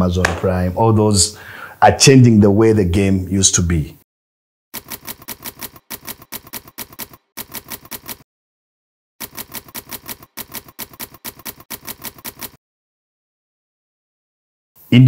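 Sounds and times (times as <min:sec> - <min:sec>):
typewriter keys striking: 0:04.8 - 0:08.2, 0:09.2 - 0:12.6.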